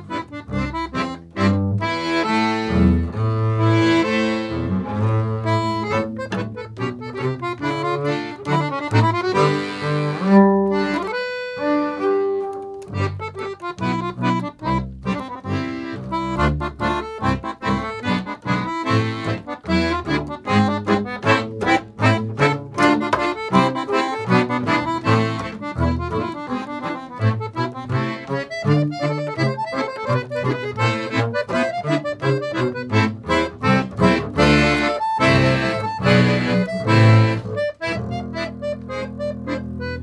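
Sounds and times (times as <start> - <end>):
accordion: 0.0 - 40.0
bowed double bass: 0.0 - 40.0.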